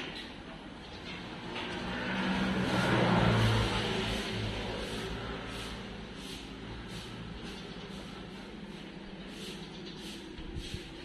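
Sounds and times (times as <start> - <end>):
vehicle passing by: 1.0 - 11.0.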